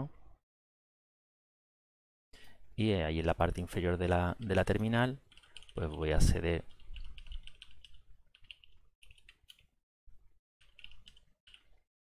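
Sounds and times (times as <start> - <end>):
computer keyboard typing: 4.4 - 9.7, 10.6 - 11.8.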